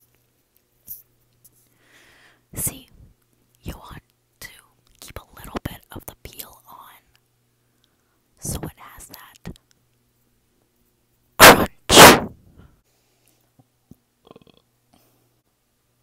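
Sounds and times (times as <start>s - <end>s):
person whispering: 2.6s - 3.0s, 3.6s - 7.2s, 8.4s - 9.6s.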